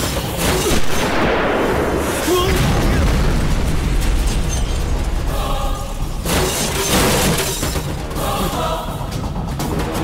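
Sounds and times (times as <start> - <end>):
explosion with low rumble: 1.0 - 5.2.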